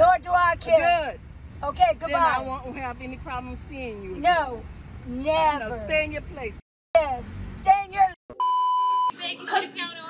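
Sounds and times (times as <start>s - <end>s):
people talking: 0.0s - 8.2s, 9.1s - 10.0s
electronic censor bleep: 8.3s - 9.2s.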